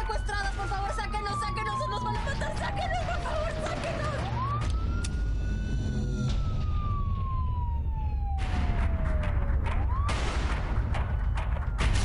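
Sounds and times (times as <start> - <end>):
police siren wailing: 0.0 - 12.0
low rumble: 3.8 - 12.0.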